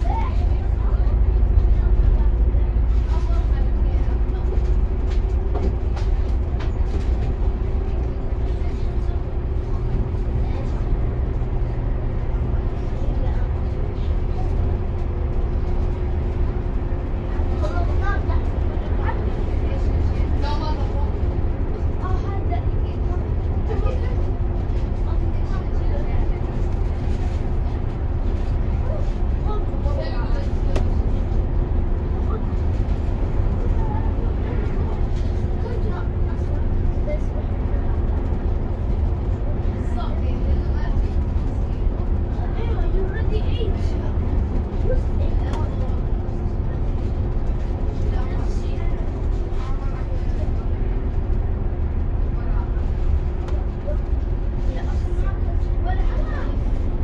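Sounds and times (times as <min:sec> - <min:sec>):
bus engine and road drone: 0:00.0 - 0:57.0
constant hum: 0:00.0 - 0:57.0.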